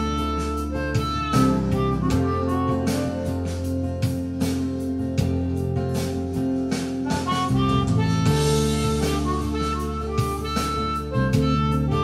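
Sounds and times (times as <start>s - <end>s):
backing track with beat and bass: 0.0s - 12.0s
harmonica held notes: 0.0s - 12.0s.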